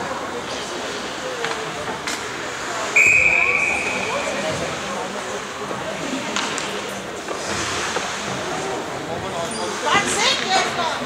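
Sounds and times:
arena chatter: 0:00.0 - 0:11.0
referee's whistle blast: 0:03.0 - 0:04.4.

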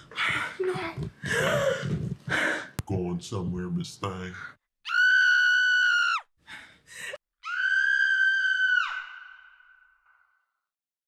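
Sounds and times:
woman screaming: 0:04.9 - 0:06.3, 0:07.4 - 0:09.5.

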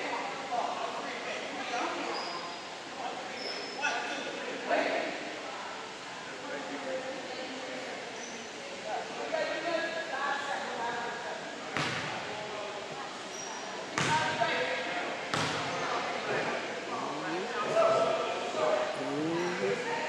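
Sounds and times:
indistinct chatter: 0:16.8 - 0:17.9, 0:18.8 - 0:20.0.

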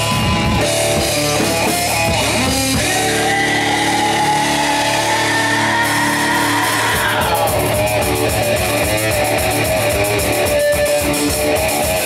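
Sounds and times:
distorted electric guitar: 0:00.0 - 0:12.0
heavy metal band playing: 0:00.0 - 0:12.0.

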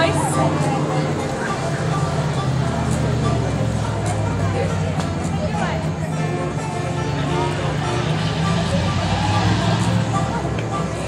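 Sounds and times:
banjo: 0:00.0 - 0:11.0.

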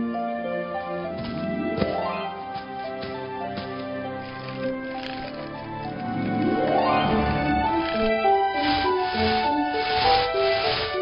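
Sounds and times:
background music melody: 0:00.0 - 0:11.0
straw brooms sweeping: 0:01.8 - 0:11.0.

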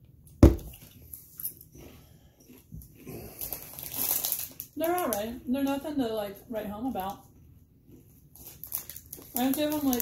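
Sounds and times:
sharp thump: 0:00.4 - 0:00.7
crunching corn chips: 0:03.4 - 0:05.2, 0:08.4 - 0:10.0.

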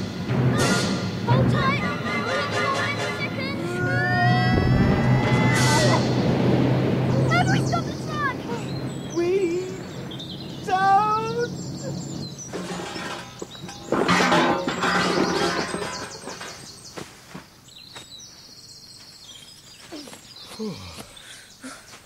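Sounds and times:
background music: 0:00.0 - 0:03.6
birdsong: 0:01.3 - 0:22.0
people crying out: 0:03.6 - 0:06.2
loud crash: 0:04.5 - 0:07.5.

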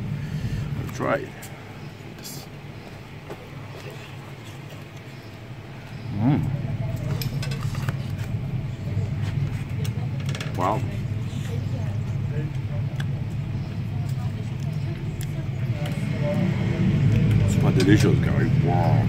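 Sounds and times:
low engine rumble: 0:00.0 - 0:19.0.

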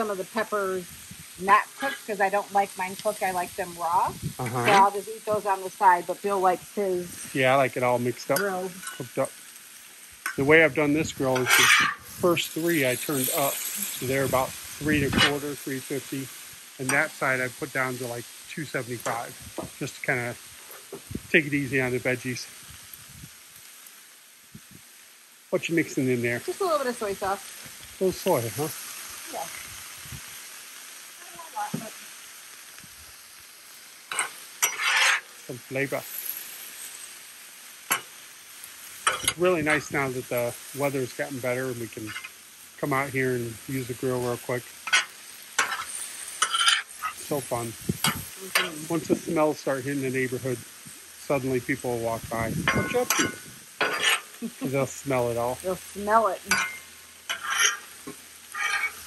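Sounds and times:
chicken sizzling on griddle: 0:00.0 - 0:59.0
metal spatula scraping griddle: 0:08.3 - 0:09.3, 0:11.2 - 0:15.7, 0:34.1 - 0:37.2, 0:40.8 - 0:42.4, 0:43.8 - 0:49.4, 0:52.7 - 0:55.8, 0:56.5 - 0:59.0.

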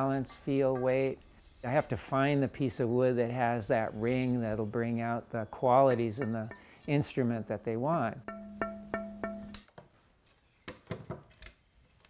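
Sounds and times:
wood tapped with ringing tone: 0:05.9 - 0:06.7, 0:08.2 - 0:09.6.

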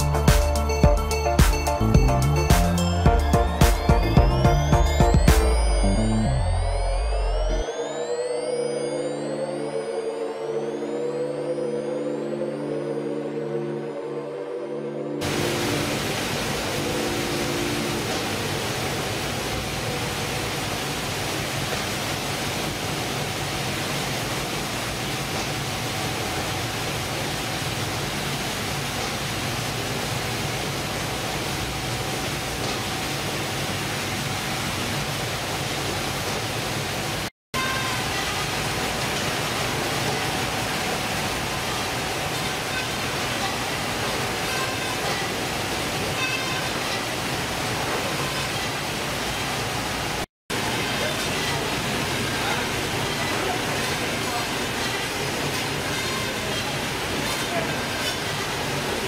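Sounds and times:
conveyors running: 0:00.0 - 0:13.0, 0:15.2 - 0:59.0
fish-processing machinery running: 0:15.2 - 0:37.2, 0:37.8 - 0:59.0.

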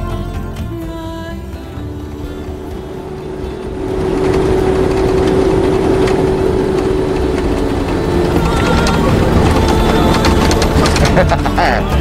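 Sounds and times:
vehicle engine and road noise: 0:01.4 - 0:12.0.

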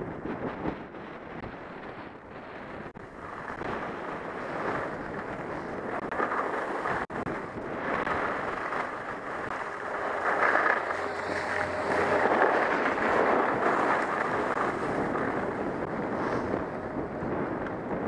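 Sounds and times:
wind buffeting microphone: 0:00.0 - 0:18.0
skis sliding over snow: 0:02.9 - 0:18.0.

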